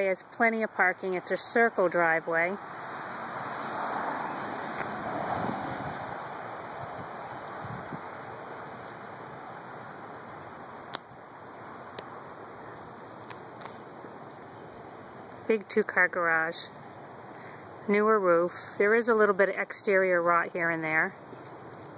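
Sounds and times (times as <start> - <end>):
even rushing noise: 2.7 - 8.6.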